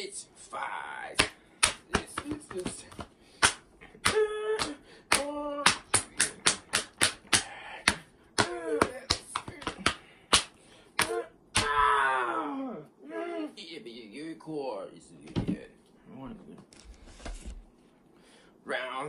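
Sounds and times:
sharp slaps and clicks: 0:01.1 - 0:11.8.

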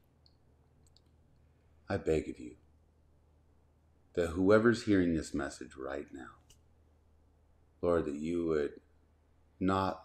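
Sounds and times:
man talking: 0:01.9 - 0:02.6, 0:04.2 - 0:06.4, 0:07.8 - 0:08.8, 0:09.6 - 0:10.0.

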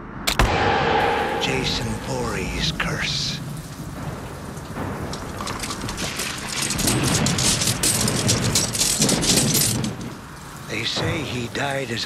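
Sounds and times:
low rumble: 0:00.3 - 0:08.7
heavy rain pouring: 0:01.3 - 0:12.0.

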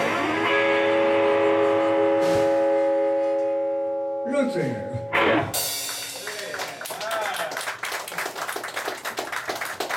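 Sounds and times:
amplified blues harmonica chord: 0:00.0 - 0:05.8.

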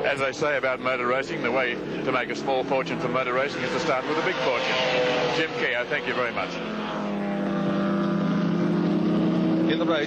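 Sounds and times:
racing car engines: 0:00.0 - 0:10.0.

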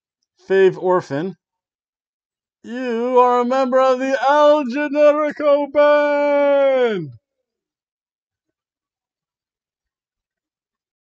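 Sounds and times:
man's sung-out shout: 0:04.2 - 0:07.2.

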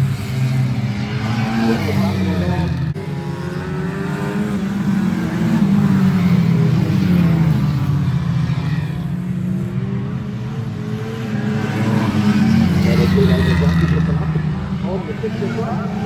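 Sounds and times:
race car engines: 0:00.0 - 0:16.0.

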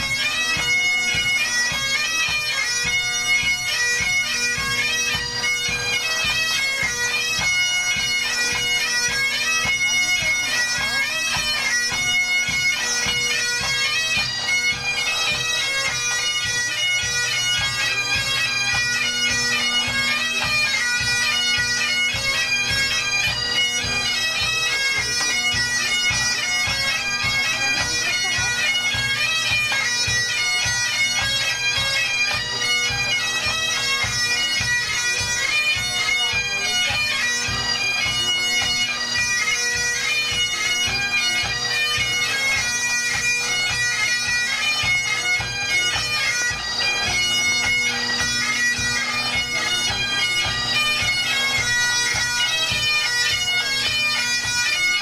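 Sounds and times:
bagpipes playing a march: 0:00.0 - 0:55.0
drums beating time: 0:19.6 - 0:31.4.

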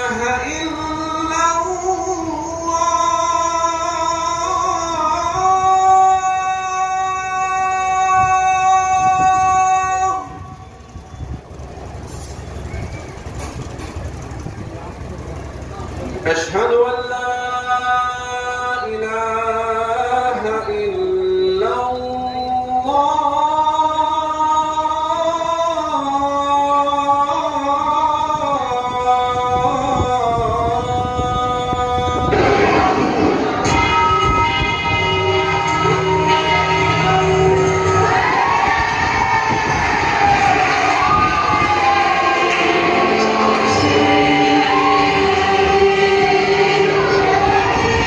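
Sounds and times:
low background rumble: 0:00.0 - 0:21.5, 0:22.4 - 0:48.0
held chord of steady tones: 0:15.0 - 0:38.9, 0:40.1 - 0:48.0.

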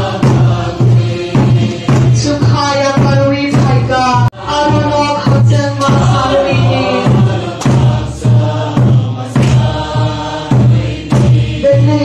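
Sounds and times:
group singing in unison: 0:00.0 - 0:12.0
music with steady beat and bass: 0:00.0 - 0:12.0.

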